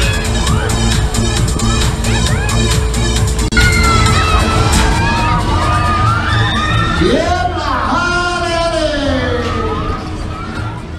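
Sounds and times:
fairground music with bass beat: 0:00.0 - 0:07.5
riders screaming: 0:03.6 - 0:08.0.

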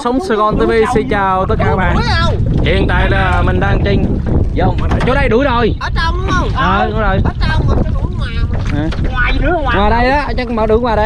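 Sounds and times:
man talking: 0:00.0 - 0:10.1
wind buffeting microphone: 0:00.0 - 0:11.0.

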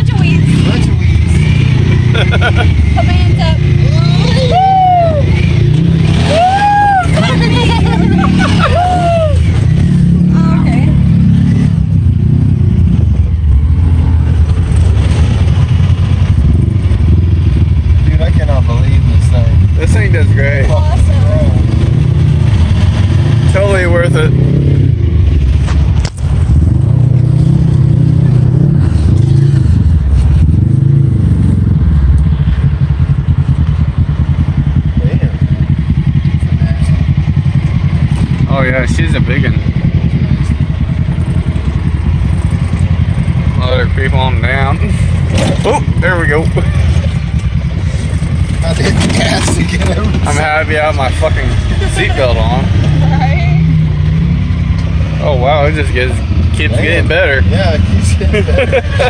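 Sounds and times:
voices calling out: 0:00.0 - 0:11.7, 0:34.5 - 0:59.0
utility vehicle engine running: 0:00.0 - 0:59.0.

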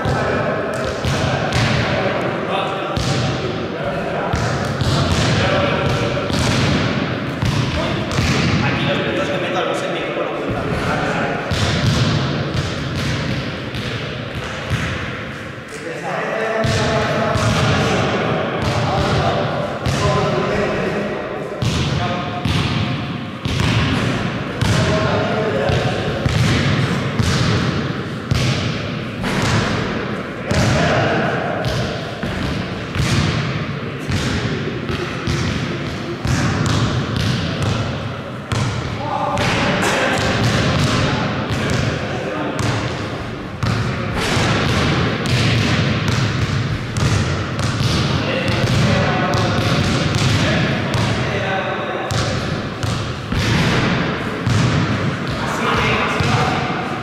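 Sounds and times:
basketball bouncing on gym floor: 0:00.0 - 0:02.0, 0:03.0 - 0:03.4, 0:04.3 - 0:08.6, 0:10.5 - 0:15.3, 0:16.6 - 0:17.9, 0:21.6 - 0:25.1, 0:25.7 - 0:30.9, 0:31.6 - 0:42.0, 0:42.6 - 0:51.2, 0:52.1 - 0:56.7.

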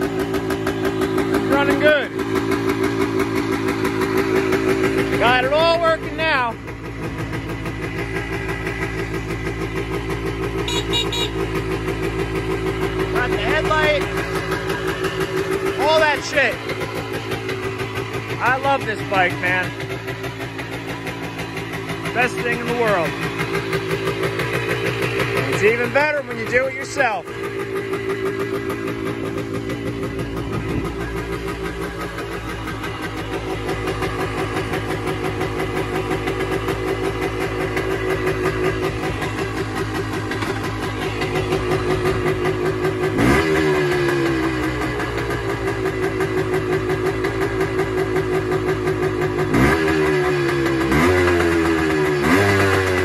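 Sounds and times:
two-stroke engine idling: 0:00.0 - 0:53.0.

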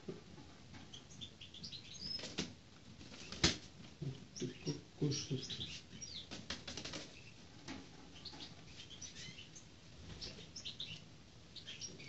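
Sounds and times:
bird wings flapping: 0:06.3 - 0:07.1.

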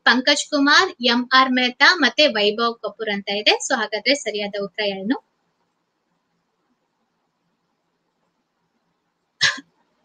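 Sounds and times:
woman coughing: 0:09.4 - 0:09.6.

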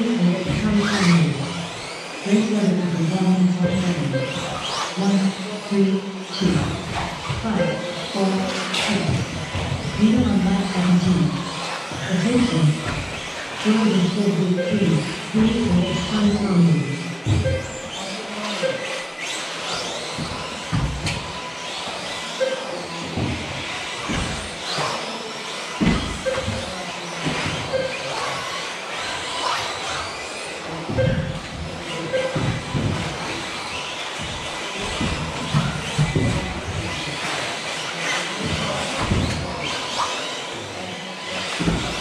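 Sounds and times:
rc car motors whining: 0:00.0 - 0:42.0
rc cars thumping on landings: 0:03.8 - 0:13.8, 0:14.7 - 0:42.0
short beeps: 0:07.6 - 0:07.9, 0:14.6 - 0:16.1, 0:17.4 - 0:17.9, 0:18.6 - 0:19.0, 0:22.4 - 0:22.7, 0:26.2 - 0:26.6, 0:27.7 - 0:28.0, 0:31.0 - 0:31.4, 0:32.1 - 0:32.5.

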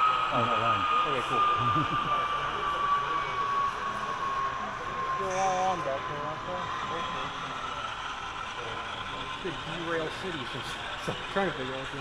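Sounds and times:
people talking: 0:00.3 - 0:07.9, 0:08.5 - 0:12.0
model train wheels rolling on rails: 0:02.3 - 0:12.0.

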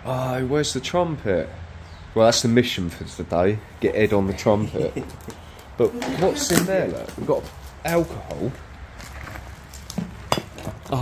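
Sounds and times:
glass bottle clinking: 0:10.0 - 0:10.9.

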